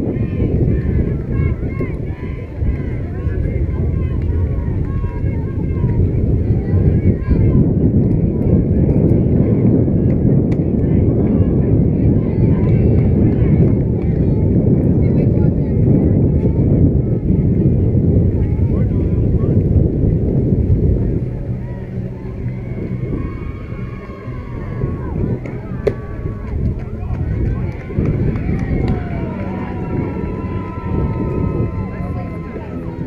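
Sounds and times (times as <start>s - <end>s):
faint distant voices: 0.0s - 33.0s
wind rumbling on microphone: 0.0s - 33.0s.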